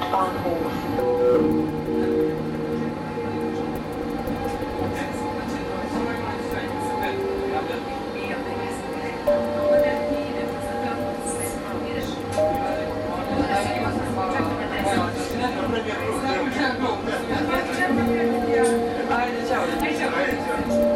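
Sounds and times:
tram wheels and motor running: 0.0s - 20.9s
steady tone: 0.6s - 15.7s.

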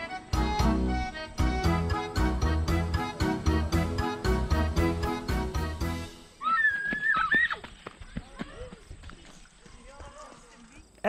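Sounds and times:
background music with steady beat: 0.0s - 6.3s
children shrieking with delight: 6.4s - 7.7s
children's voices chattering: 7.5s - 11.0s.

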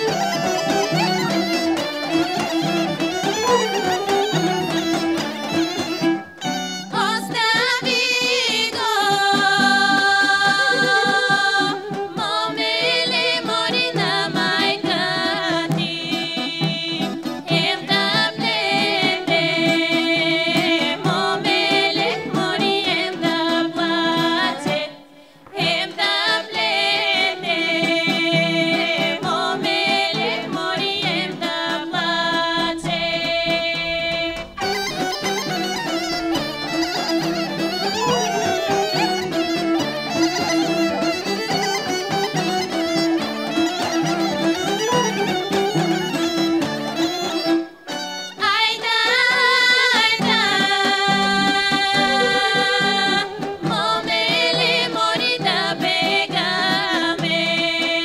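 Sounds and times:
women singing in harmony: 0.0s - 6.2s, 6.8s - 46.7s, 48.4s - 58.0s
instrumental accompaniment: 0.0s - 58.0s.

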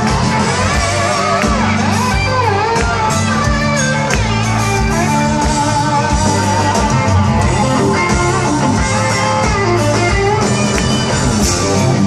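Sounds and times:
bass: 0.0s - 12.0s
drums: 0.0s - 12.0s
guitar melody: 0.0s - 12.0s.

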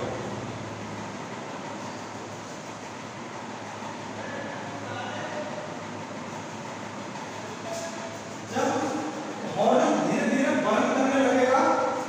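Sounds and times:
room background noise: 0.0s - 12.0s.

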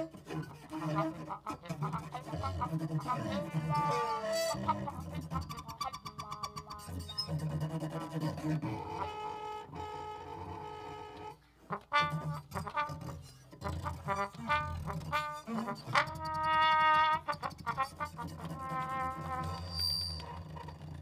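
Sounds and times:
trombone notes: 0.0s - 7.2s, 8.0s - 19.9s.

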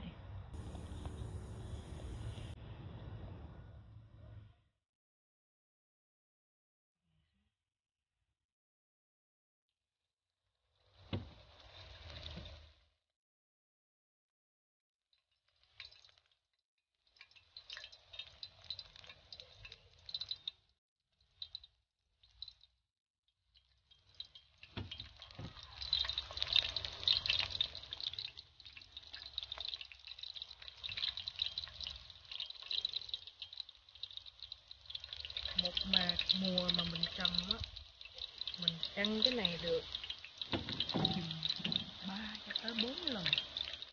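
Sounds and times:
food deep-frying in hot oil: 0.5s - 2.6s, 10.6s - 13.0s, 15.1s - 43.9s.

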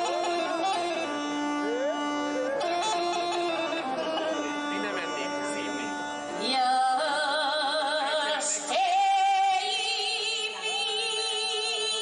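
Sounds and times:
bagpipe melody over drone: 0.0s - 9.8s.

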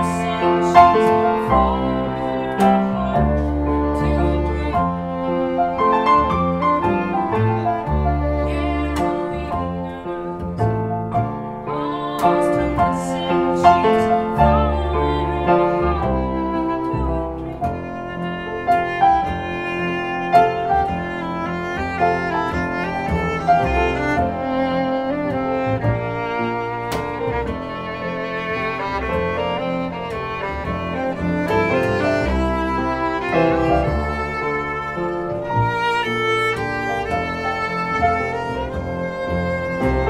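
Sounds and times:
bowed violin: 0.0s - 40.0s
grand piano: 0.0s - 40.0s
plucked double bass: 0.0s - 40.0s.

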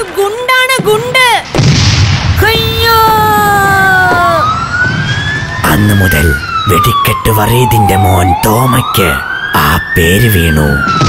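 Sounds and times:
boom with low rumble: 1.4s - 5.5s
rising siren-like glide: 3.9s - 11.0s.

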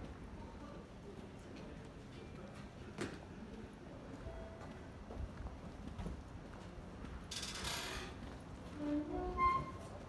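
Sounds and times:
low street ambience: 0.0s - 10.0s.

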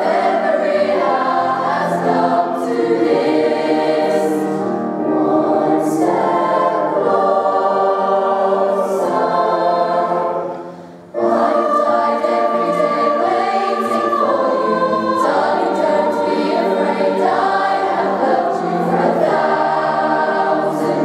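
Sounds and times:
youth choir singing in harmony: 0.0s - 21.0s.

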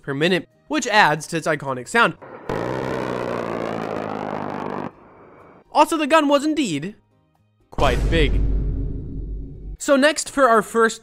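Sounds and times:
rotary cannon firing: 2.2s - 5.5s.

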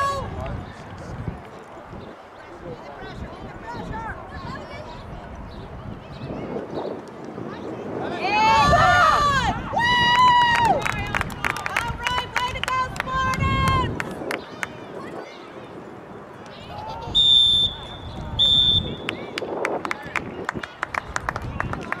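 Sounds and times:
voices shouting: 7.9s - 11.1s
referee's whistle blasts: 17.2s - 19.1s.

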